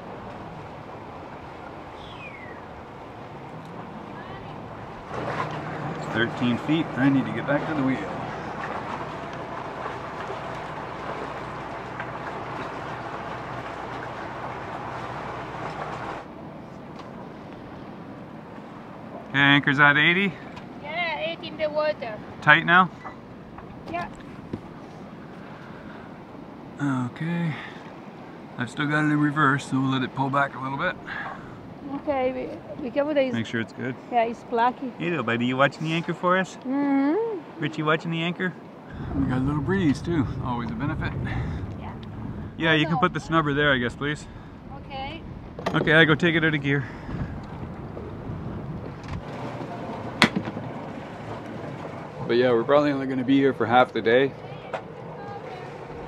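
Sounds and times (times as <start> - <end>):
boat engine running: 0.0 - 27.1, 27.9 - 56.0.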